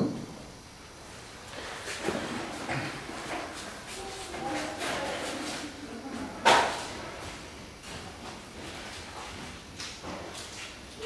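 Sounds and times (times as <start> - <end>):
faint indistinct voices: 3.6 - 7.1.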